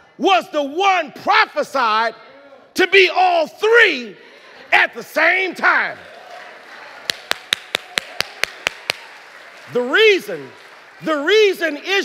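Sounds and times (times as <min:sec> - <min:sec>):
hand claps in rhythm: 0:07.0 - 0:09.8.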